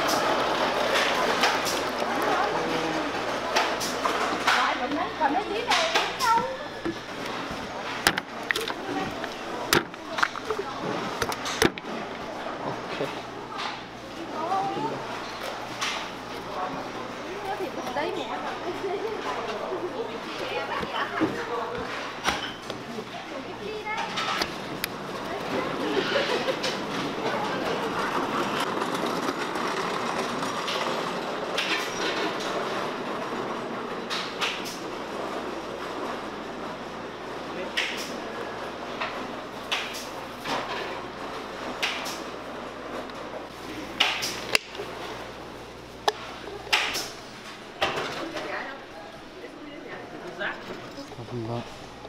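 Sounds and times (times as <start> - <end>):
sharp clicks and knocks: 8.0 - 10.6.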